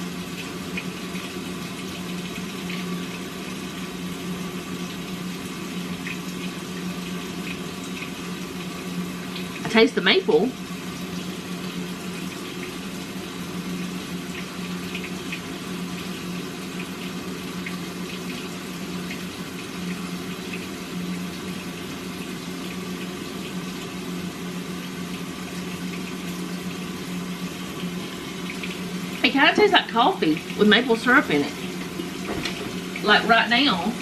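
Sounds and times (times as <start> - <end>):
constant low hum: 0.0 - 34.0
running water: 0.0 - 34.0.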